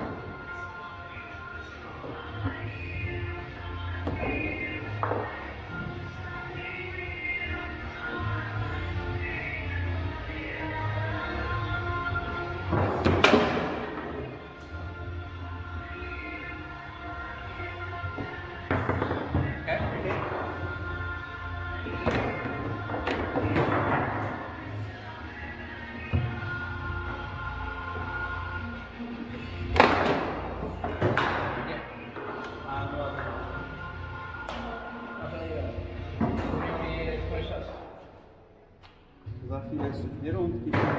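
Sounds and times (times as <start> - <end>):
background music: 0.0 - 40.9
foosball ball and rods knocking: 29.7 - 32.6.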